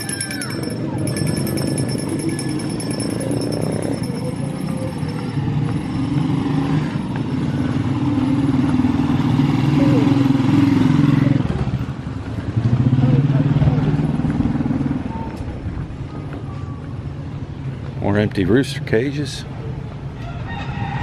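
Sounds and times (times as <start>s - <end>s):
motorcycle engine running: 0.0s - 14.8s.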